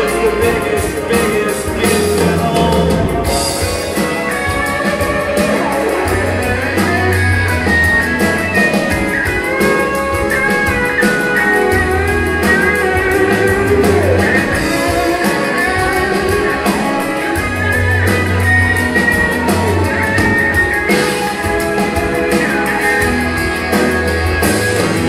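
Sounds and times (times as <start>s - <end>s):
bass guitar: 0.0s - 25.0s
electric guitar melody: 0.0s - 25.0s
steady drum beat: 0.0s - 25.0s.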